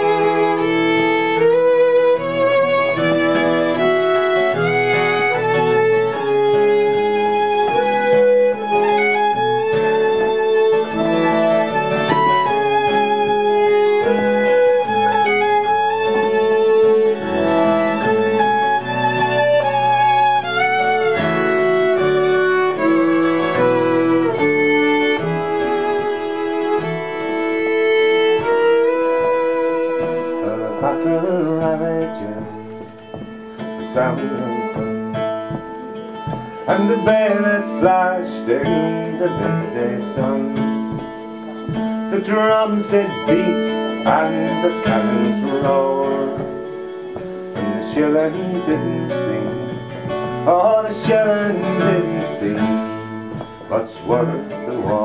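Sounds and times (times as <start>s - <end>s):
acoustic guitar: 0.0s - 55.0s
button accordion: 0.0s - 55.0s
fiddle: 0.0s - 55.0s.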